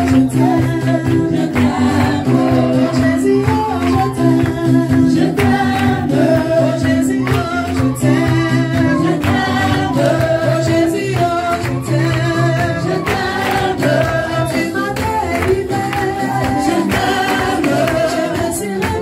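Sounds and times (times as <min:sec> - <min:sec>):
congregation and choir singing: 0:00.0 - 0:19.0
hand clapping: 0:00.0 - 0:19.0.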